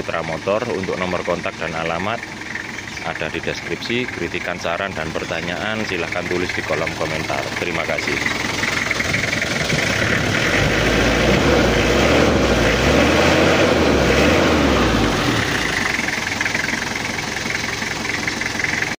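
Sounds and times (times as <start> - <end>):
diesel engine idling: 0.0 - 19.0.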